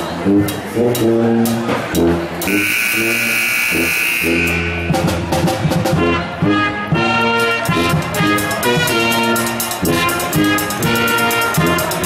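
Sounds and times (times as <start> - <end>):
tuba bass line: 0.0 - 12.0
pep band playing: 0.4 - 12.0.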